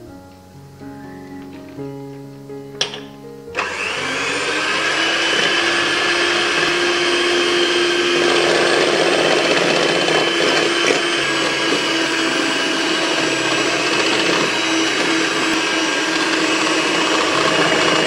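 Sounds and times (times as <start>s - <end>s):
electric hand mixer whining: 3.5s - 18.0s.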